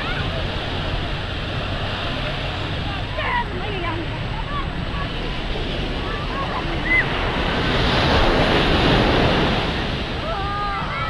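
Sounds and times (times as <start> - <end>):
surf washing on sandy beach: 0.0 - 11.0
wind on microphone: 0.0 - 11.0.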